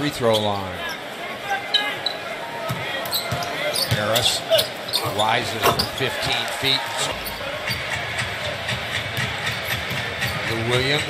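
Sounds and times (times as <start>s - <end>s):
arena background noise: 0.0s - 11.0s.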